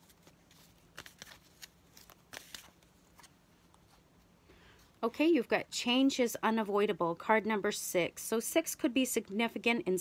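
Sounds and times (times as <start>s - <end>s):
cards clicking and rustling: 0.0s - 3.4s.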